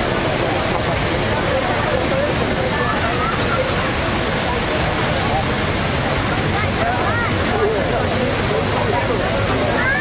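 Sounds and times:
crowd talking faintly: 0.0 - 10.0
fountain water splashing: 0.0 - 10.0.

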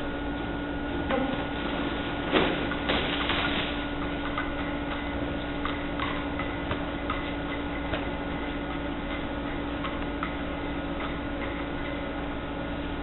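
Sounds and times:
steady mechanical hum: 0.0 - 13.0.

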